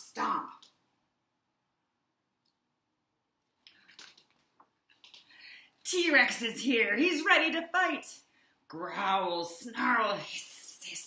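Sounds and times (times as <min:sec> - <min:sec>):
woman reading aloud: 0:00.0 - 0:00.6, 0:05.8 - 0:11.0.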